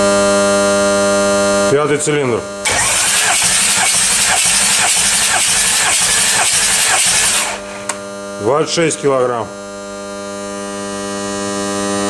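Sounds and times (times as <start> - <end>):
diesel engine cranking on starter: 2.6 - 8.0.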